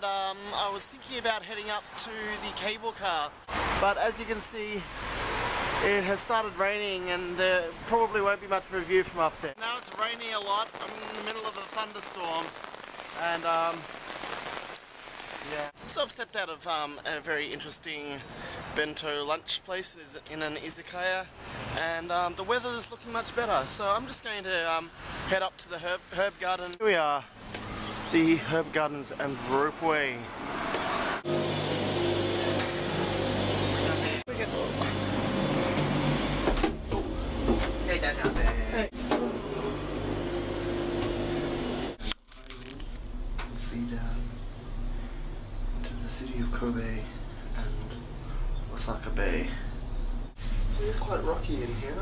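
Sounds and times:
man's voice: 5.9s - 12.5s
heavy rain on pavement: 9.6s - 15.8s.

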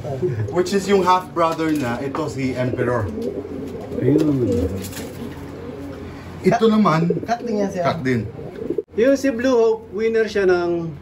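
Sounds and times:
pigeons cooing: 2.2s - 8.9s.

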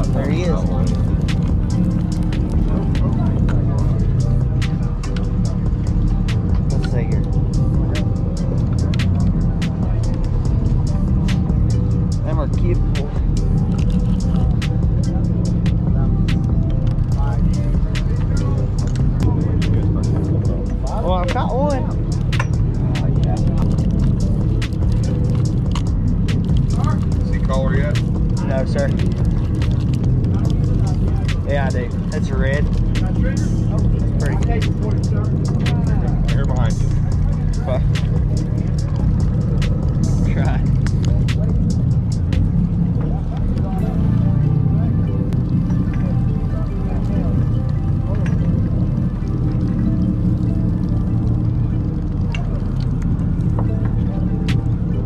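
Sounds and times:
boat engine rumble: 0.0s - 55.0s
indistinct voices: 0.0s - 55.0s.

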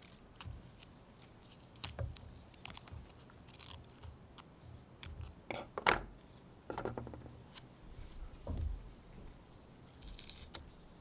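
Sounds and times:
tape crackling and rustling: 0.0s - 5.4s, 9.8s - 11.0s.

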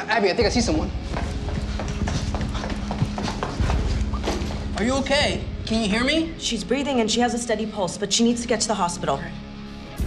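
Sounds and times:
footsteps of people running: 1.0s - 4.8s.

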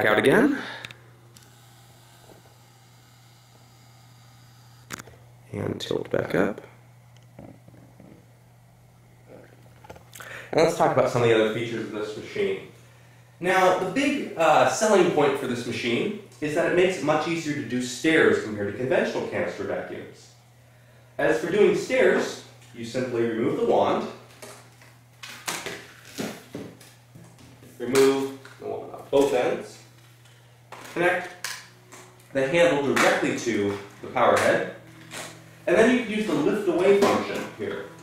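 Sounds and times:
steady low hum: 0.0s - 38.0s.

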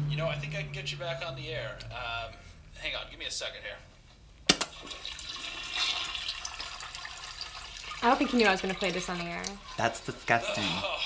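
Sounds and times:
flush handle click: 4.5s - 4.8s
toilet water rushing: 4.5s - 10.9s.

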